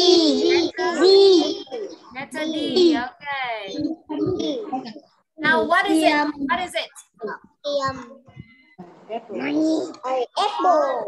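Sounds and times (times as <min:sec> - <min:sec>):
child calling out over video call: 0:00.0 - 0:03.0.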